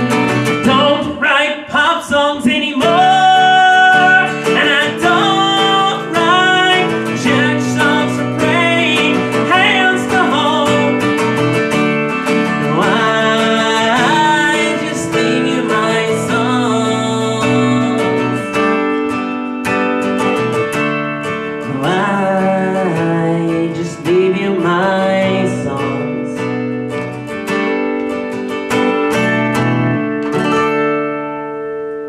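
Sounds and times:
person singing wordlessly: 0.0s - 11.4s, 12.5s - 18.8s, 21.6s - 26.6s
acoustic guitar strumming: 0.0s - 32.0s.

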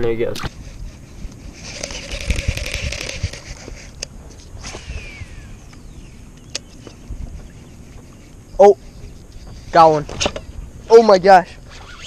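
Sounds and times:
steady hum: 0.0s - 12.0s
hissing rush: 0.5s - 6.2s
fishing reel clicks and knocks: 1.7s - 3.5s.

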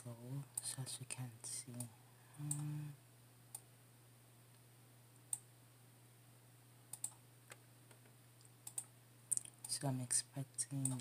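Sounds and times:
faint low hum: 0.0s - 11.0s
computer mouse clicks: 1.8s - 2.7s, 6.9s - 7.2s, 7.9s - 9.8s.

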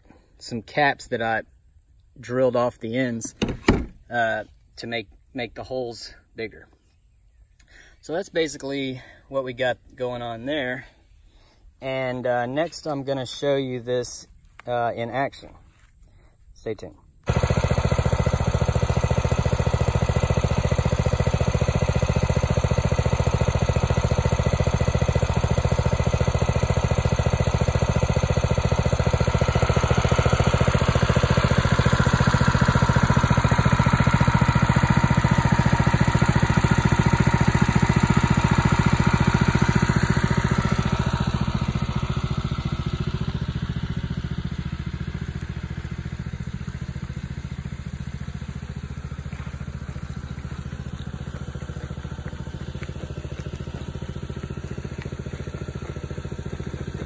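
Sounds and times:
small water pump engine running: 17.2s - 57.0s.

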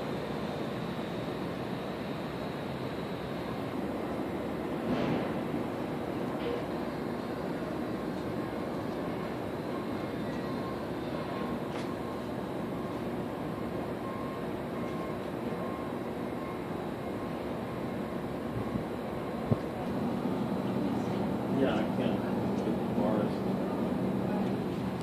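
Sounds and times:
distant city traffic noise: 0.0s - 25.0s.

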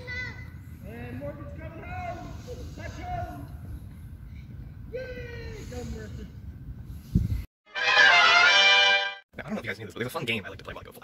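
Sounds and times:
wind rumble on microphone: 4.6s - 7.5s.

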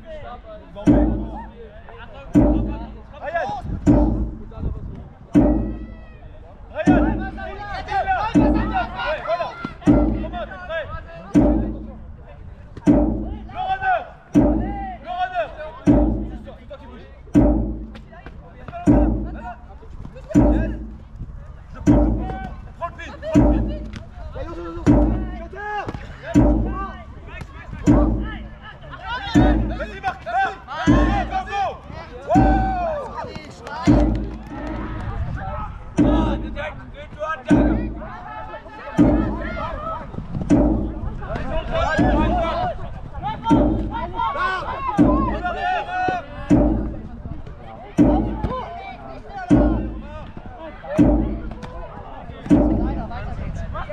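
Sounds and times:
drum beats: 0.7s - 53.9s
players shouting: 5.3s - 12.2s, 21.8s - 53.1s.

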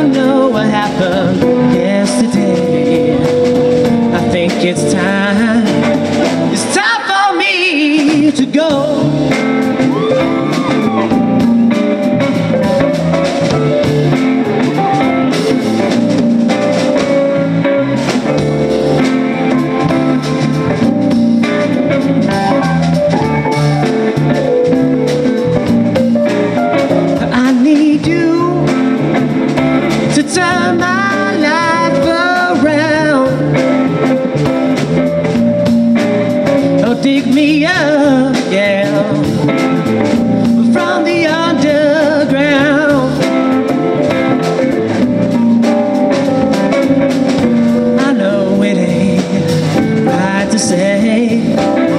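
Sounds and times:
bass guitar: 0.0s - 51.9s
drums: 0.0s - 51.9s
electric guitar: 0.0s - 51.9s.

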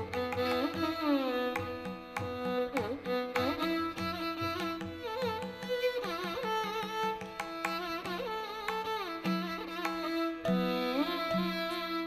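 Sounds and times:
percussion strokes: 0.0s - 11.9s
violin melody with sliding notes: 0.0s - 12.0s.

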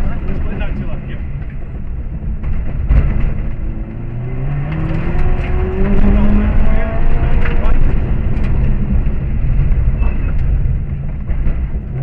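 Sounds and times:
car engine accelerating: 0.0s - 12.0s.

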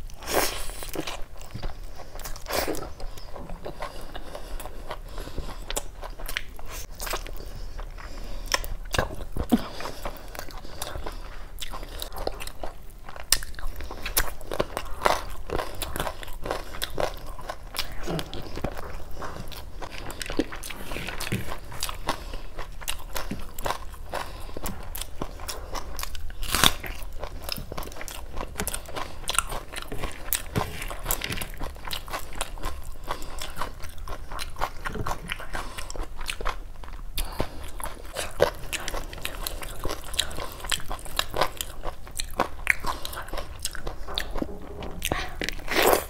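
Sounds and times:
wet chewing and smacking: 0.0s - 46.0s.

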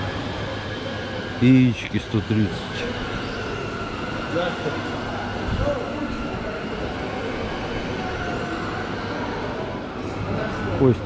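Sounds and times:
distant voices of shoppers: 0.0s - 11.0s.

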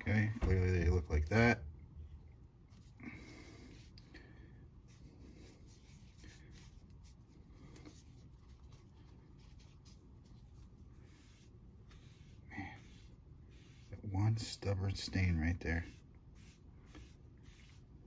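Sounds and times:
cleaning pad rubbing paper: 4.8s - 18.0s.

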